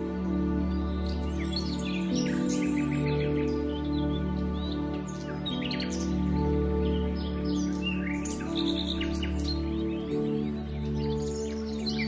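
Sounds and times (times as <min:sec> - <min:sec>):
calm ambient music: 0:00.0 - 0:12.0
songbirds chirping: 0:00.0 - 0:12.0.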